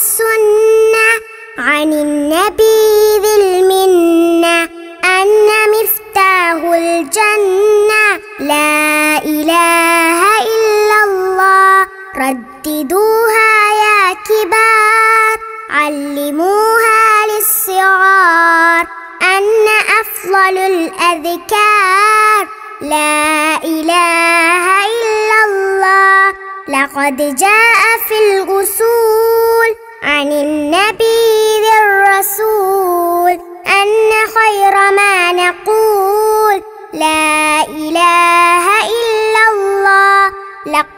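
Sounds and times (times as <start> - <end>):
child singing: 0.0 - 40.9.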